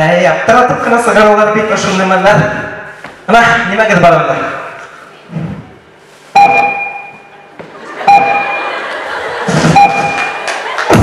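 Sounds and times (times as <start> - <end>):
electronic chime tone: 6.4 - 7.3.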